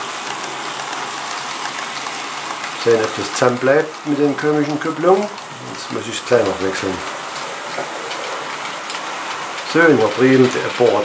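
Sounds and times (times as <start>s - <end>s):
model train wheels rattling on rail: 0.0s - 11.0s.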